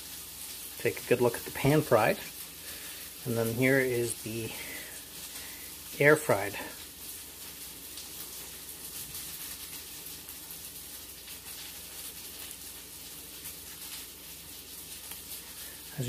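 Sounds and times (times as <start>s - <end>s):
background hiss: 0.0s - 16.0s
chicken nugget crackling: 6.0s - 16.0s.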